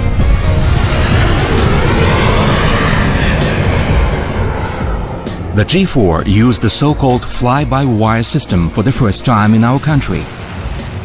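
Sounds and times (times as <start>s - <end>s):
background music: 0.0s - 11.0s
jet aircraft rushing: 0.0s - 11.0s.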